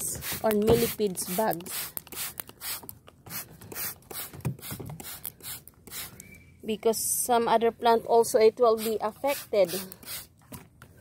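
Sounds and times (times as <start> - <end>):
spray bottle squirting: 0.0 - 6.3, 8.7 - 10.4.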